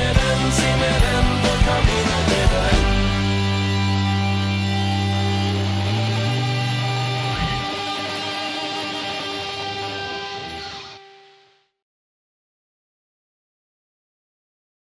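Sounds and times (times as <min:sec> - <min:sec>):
electric guitar and bass chord: 0:00.0 - 0:11.7.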